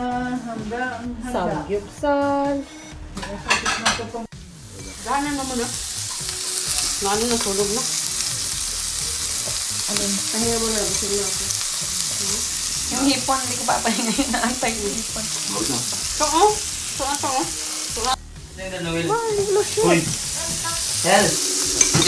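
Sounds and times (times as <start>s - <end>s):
food sizzling on a grill: 3.2s - 22.0s.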